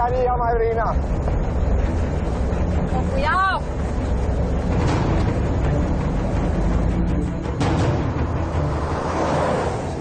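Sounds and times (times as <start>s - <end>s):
heavy low rumble: 0.0s - 10.0s
tense dramatic score: 0.0s - 10.0s.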